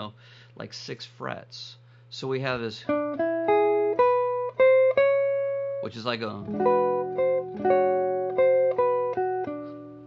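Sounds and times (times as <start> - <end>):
clean electric guitar phrase: 2.9 - 10.0.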